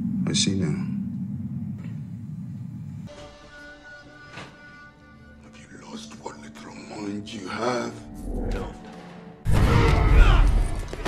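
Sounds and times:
low steady rumble: 0:00.0 - 0:03.1.

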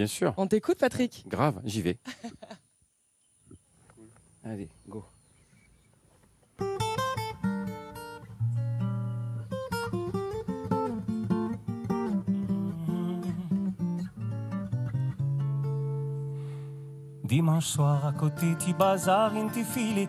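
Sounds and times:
acoustic guitar playing: 0:06.6 - 0:20.0.

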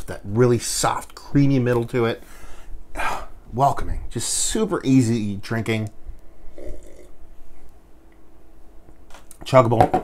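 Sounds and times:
man talking: 0:00.0 - 0:02.2, 0:03.0 - 0:06.0, 0:09.3 - 0:10.0.

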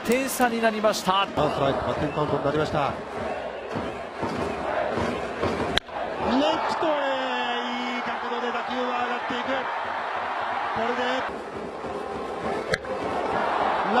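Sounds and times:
crowd cheering: 0:00.0 - 0:14.0.

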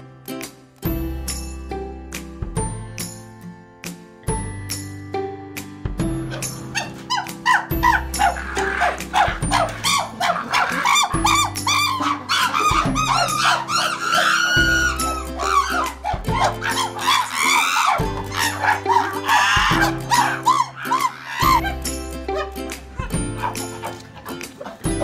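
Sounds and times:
background music with bass line: 0:00.0 - 0:25.0
chimpanzees barking and hooting: 0:06.2 - 0:25.0.

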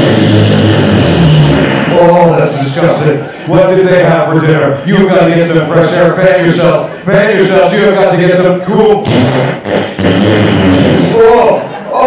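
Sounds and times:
audience laughing: 0:01.8 - 0:04.0, 0:11.1 - 0:12.0
person talking: 0:01.8 - 0:09.0.

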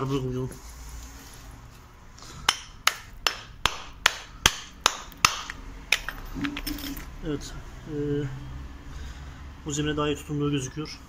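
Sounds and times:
hammer striking mortar on concrete: 0:02.4 - 0:06.1.

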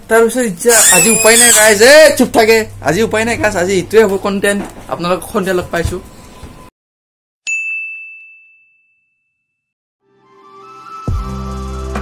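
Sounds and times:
bell-like ding: 0:07.4 - 0:09.7.

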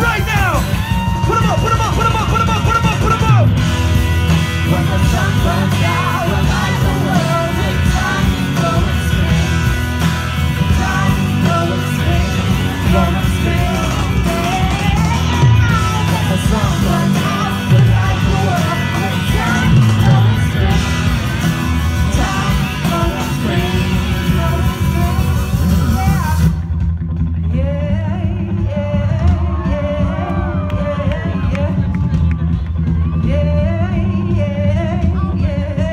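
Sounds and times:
electric guitar: 0:00.0 - 0:35.9
loud live rock band: 0:00.0 - 0:35.9
people singing: 0:04.4 - 0:25.9.

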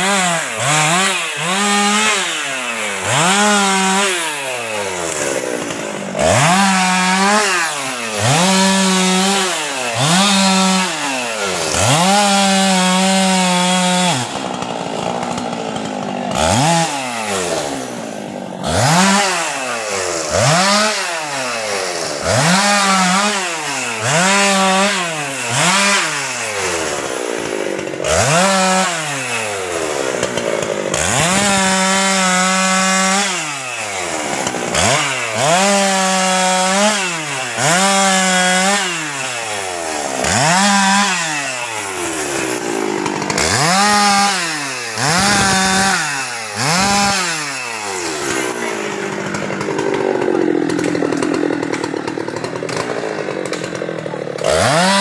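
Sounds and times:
chainsaw cutting log: 0:00.0 - 0:55.0
chainsaw revving: 0:00.0 - 0:55.0.

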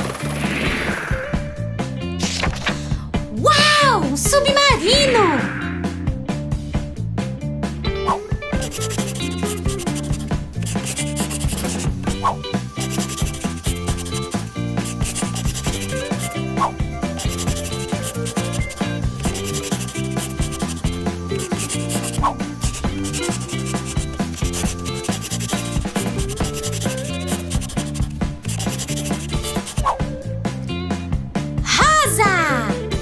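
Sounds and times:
light background tune: 0:01.3 - 0:33.0
crayon scribbling on paper: 0:08.6 - 0:12.2, 0:12.8 - 0:16.4, 0:17.0 - 0:29.8.

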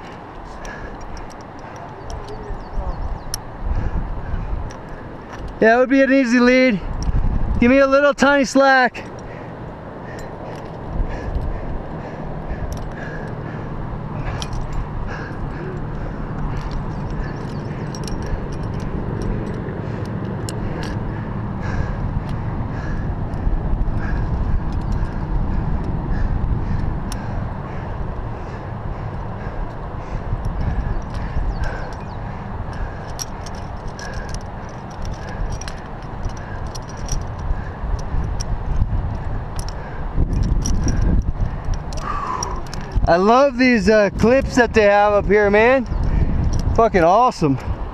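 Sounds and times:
metallic clicks of carabiners: 0:00.0 - 0:47.9
wind buffeting microphone: 0:00.0 - 0:47.9.

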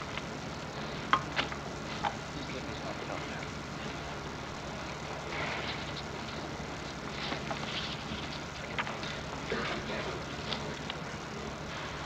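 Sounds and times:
faint clicks and crackles: 0:00.0 - 0:11.8
recording hiss and hum: 0:00.0 - 0:12.0.

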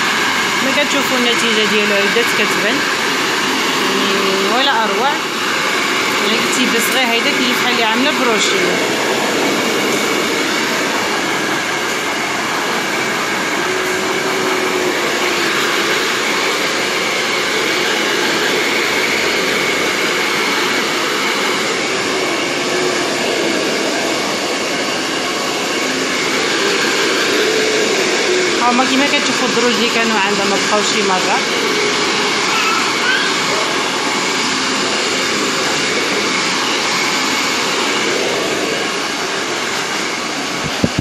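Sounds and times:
hair dryer blowing: 0:00.0 - 0:41.0.

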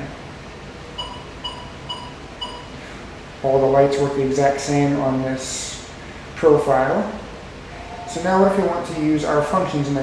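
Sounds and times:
short electronic beeps: 0:01.0 - 0:02.7.

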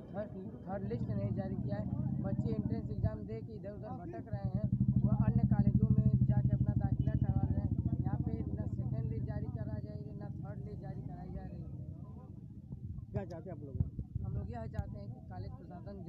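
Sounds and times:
man speaking: 0:00.0 - 0:04.4, 0:06.7 - 0:11.7, 0:13.2 - 0:16.0
motorcycle engine running: 0:00.8 - 0:13.1.

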